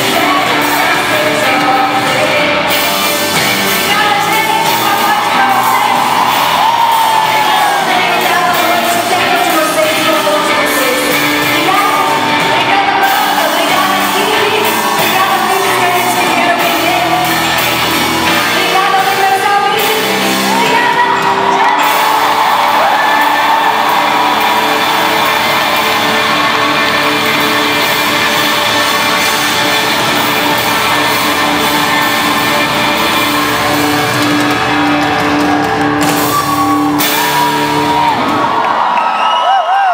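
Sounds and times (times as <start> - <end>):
crowd singing along: 0.0 - 35.0
live pop band playing: 0.0 - 39.9
audience shouting and whooping: 3.4 - 10.6, 11.2 - 19.1, 19.8 - 39.9.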